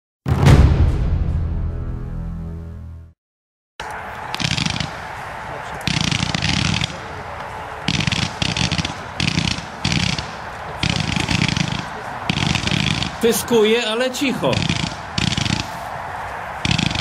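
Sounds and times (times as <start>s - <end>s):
fireworks firing rapid shots: 4.3s - 5.2s, 5.8s - 7.1s, 7.8s - 13.5s, 14.5s - 15.8s, 16.6s - 17.0s.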